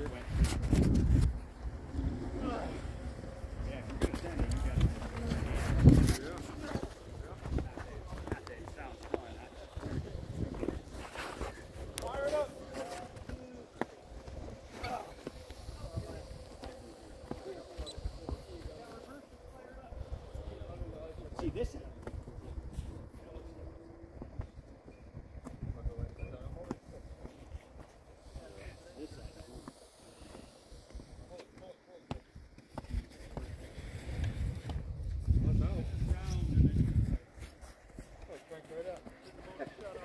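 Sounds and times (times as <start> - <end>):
wind buffeting microphone: 0.0 - 13.4, 32.8 - 38.0
distant people talking and calling: 0.0 - 40.0.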